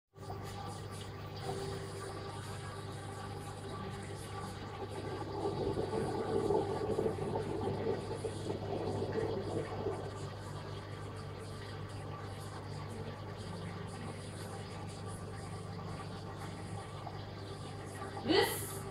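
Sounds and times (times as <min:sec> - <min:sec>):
steady low hum: 0:00.2 - 0:18.9.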